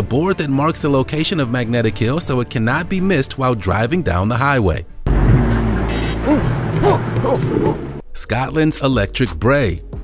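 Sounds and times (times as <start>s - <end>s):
background music: 0.0s - 10.0s
car engine sound effect: 5.1s - 8.0s.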